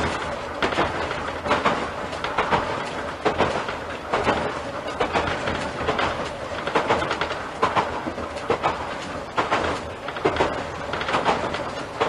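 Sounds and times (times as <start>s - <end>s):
railcar running rumble: 0.0s - 12.0s
wheels clicking on rail joints: 0.0s - 12.0s.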